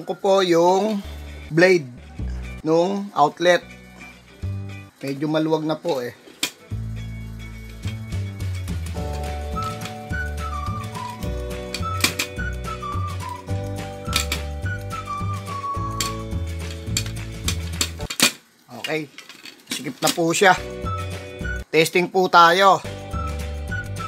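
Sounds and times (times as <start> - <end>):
bass notes: 1.1 - 2.7, 3.6 - 4.9, 6.7 - 18.1, 22.9 - 24.0
held chords: 6.6 - 18.1
whistle-like melody: 9.1 - 16.4, 20.6 - 21.8, 22.9 - 24.0.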